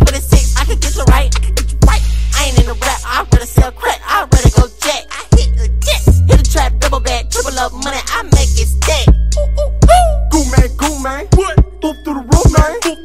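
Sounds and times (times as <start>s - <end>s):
heavy bass: 0.0s - 12.7s
rapping over a beat: 0.0s - 13.0s.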